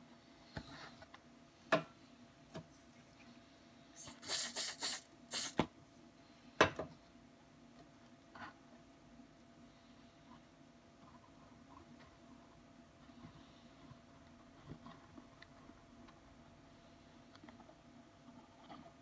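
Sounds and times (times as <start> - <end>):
aerosol can spraying: 4.0 - 5.6.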